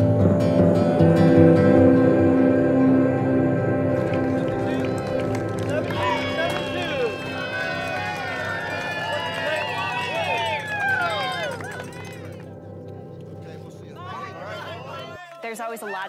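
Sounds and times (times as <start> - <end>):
background music: 0.0 - 16.0
spectators cheering and whooping: 3.8 - 12.4.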